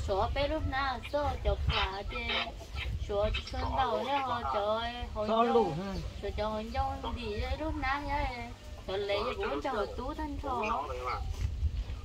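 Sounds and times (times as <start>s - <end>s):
woman speaking: 0.0s - 11.2s.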